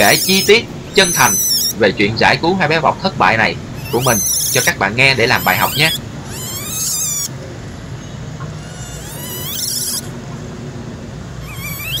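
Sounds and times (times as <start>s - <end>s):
infant monkey high-pitched cries: 0.0s - 1.8s, 3.7s - 7.4s, 8.4s - 10.2s, 11.4s - 12.0s.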